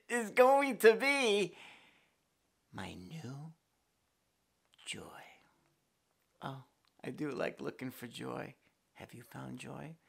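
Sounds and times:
man speaking: 0.0s - 1.6s, 2.7s - 3.7s, 4.8s - 5.4s, 6.4s - 10.0s.

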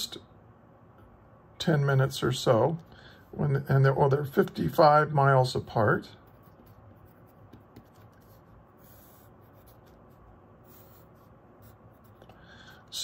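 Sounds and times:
pencil scratching on paper: 6.2s - 13.0s.

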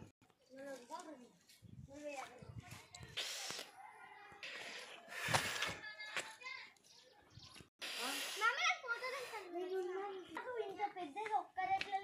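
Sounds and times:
distant people and children talking: 0.5s - 12.0s.

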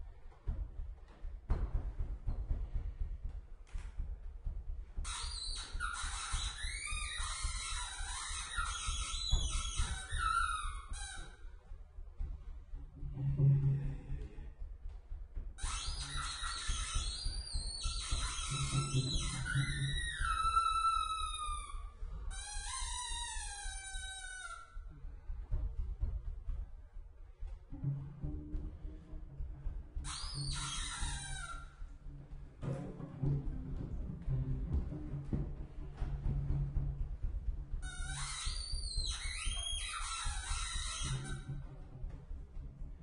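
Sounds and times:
low thumps: 0.0s - 43.0s
cello bowed notes gliding down: 12.9s - 14.8s, 18.0s - 21.2s, 27.7s - 38.1s, 41.0s - 43.0s.

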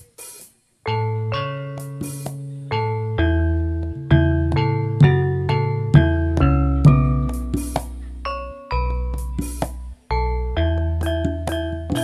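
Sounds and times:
keyboard bell-like notes: 0.9s - 12.0s
sustained bass: 1.2s - 12.0s
sharp percussion strokes: 1.8s - 2.5s, 6.8s - 10.1s.

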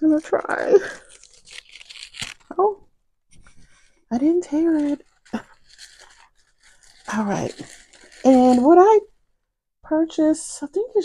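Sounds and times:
paper envelope crinkling: 0.0s - 9.2s.

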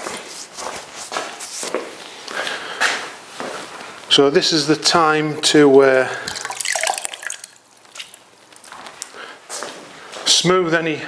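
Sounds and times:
faint water drips and splashes: 6.2s - 8.8s.

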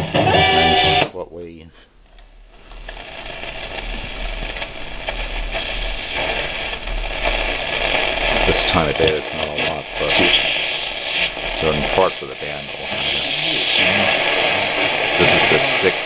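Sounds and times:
radio station voices: 0.0s - 1.9s, 2.6s - 16.0s
radio static hiss: 0.0s - 16.0s.

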